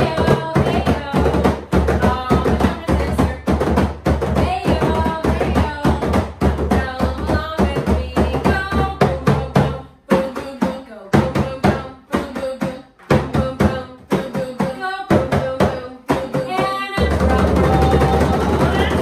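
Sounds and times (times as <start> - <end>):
person singing: 0.0 - 3.8, 4.4 - 19.0
frame drums patted by hand: 0.0 - 19.0.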